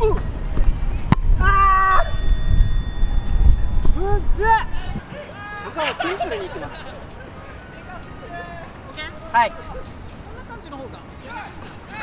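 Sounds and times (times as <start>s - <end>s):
high ringing tone: 1.9s - 4.8s.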